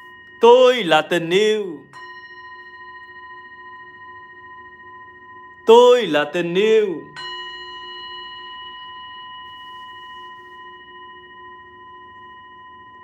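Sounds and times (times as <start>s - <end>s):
singing bowl ringing: 0.0s - 13.0s.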